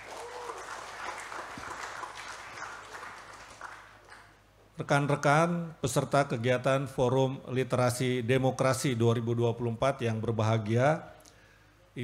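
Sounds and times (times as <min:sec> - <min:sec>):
audience applauding: 0:00.0 - 0:04.4.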